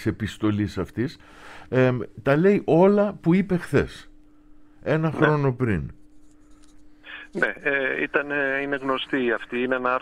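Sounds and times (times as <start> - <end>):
faint steady hum: 0.0 - 10.0
man speaking over telephone: 4.9 - 5.9, 7.1 - 10.0.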